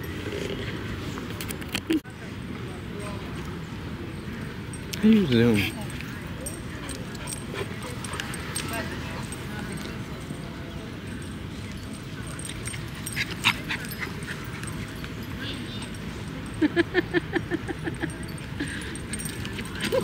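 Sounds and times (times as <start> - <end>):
distant voices: 0.0 - 20.0
outdoor background noise: 0.0 - 20.0
dogs yipping: 11.2 - 20.0.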